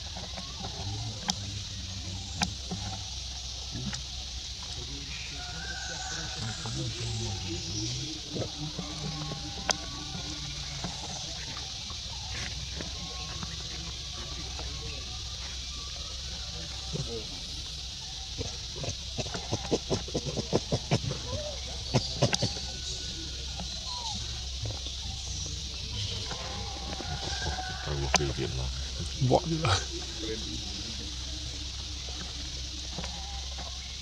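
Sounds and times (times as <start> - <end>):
indistinct voices: 0.0 - 34.0
steady high hiss: 0.0 - 34.0.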